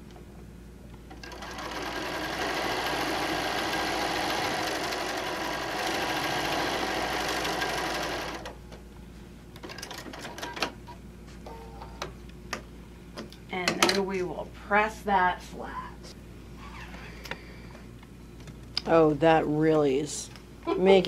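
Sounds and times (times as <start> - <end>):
sewing machine stitching: 1.2 - 8.5.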